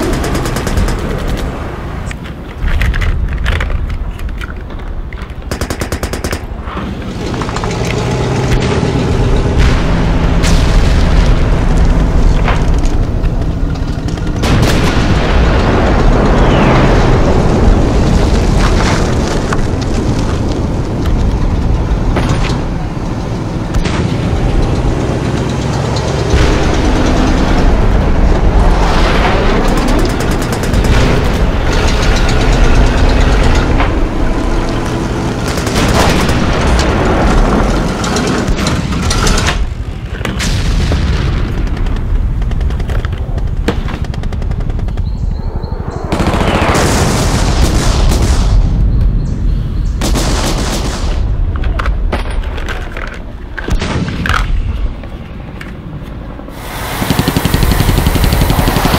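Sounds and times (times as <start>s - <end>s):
explosions: 6.4s - 22.9s, 26.1s - 52.4s, 56.4s - 58.9s
gunfire: 56.6s - 58.9s.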